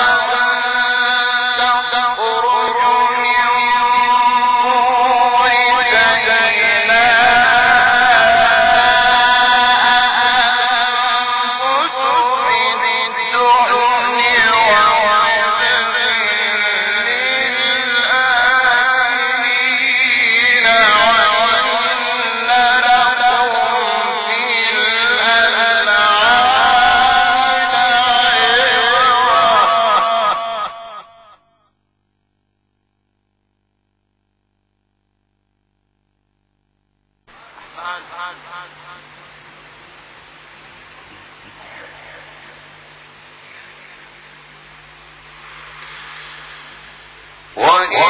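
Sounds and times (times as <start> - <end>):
man chanting: 0.0 - 31.4, 37.3 - 39.6, 40.8 - 44.4, 47.5 - 48.0
man reciting melodically: 0.0 - 31.4, 37.5 - 39.1, 47.6 - 48.0.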